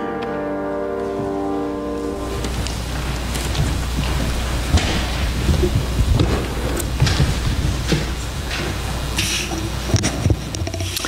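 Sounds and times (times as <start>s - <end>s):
congregation rustling and moving: 0.2s - 11.0s.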